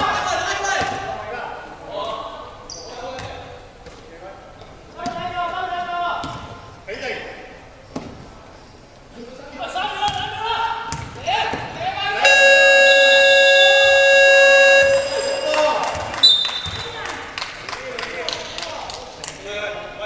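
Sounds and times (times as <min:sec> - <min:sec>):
players' voices: 0:09.6 - 0:16.2
gym buzzer blare: 0:12.2 - 0:16.2
short high whistle blast: 0:12.2 - 0:16.8.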